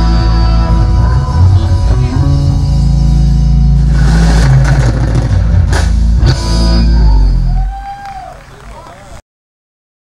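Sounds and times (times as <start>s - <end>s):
rock band playing loudly: 0.0s - 8.0s.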